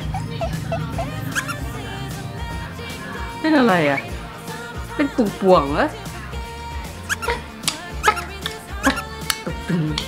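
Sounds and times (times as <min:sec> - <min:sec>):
parrot squeaky chirps: 0:00.0 - 0:01.6, 0:07.0 - 0:09.1
background music: 0:00.0 - 0:10.0.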